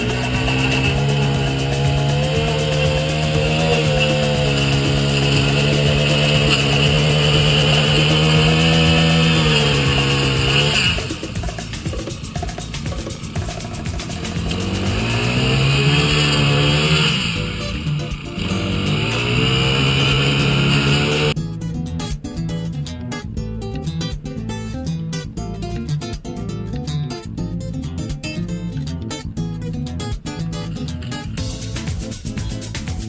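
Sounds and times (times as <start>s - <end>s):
lawn edger engine revving: 0.0s - 21.4s, 30.6s - 32.0s.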